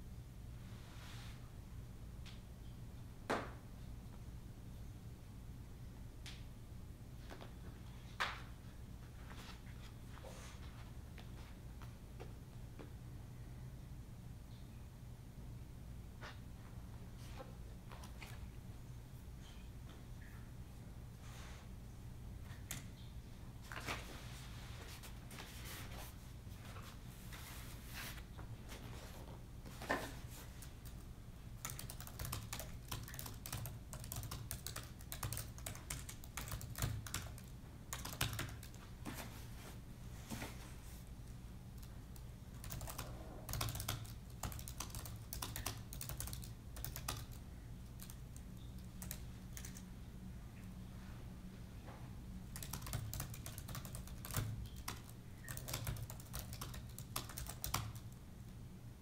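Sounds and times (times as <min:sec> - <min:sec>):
faint low hum: 0:00.0 - 0:59.0
laptop keyboard typing: 0:31.6 - 0:38.8, 0:41.8 - 0:49.8, 0:52.5 - 0:58.2.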